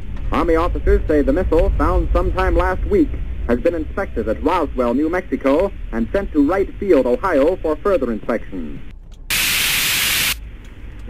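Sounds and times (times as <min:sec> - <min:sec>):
radio static hiss: 0:00.4 - 0:10.4.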